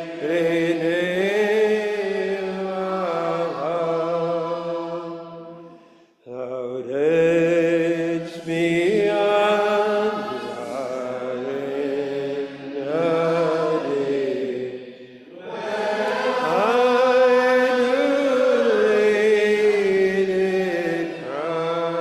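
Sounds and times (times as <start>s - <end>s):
congregation singing unaccompanied: 0.0s - 22.0s.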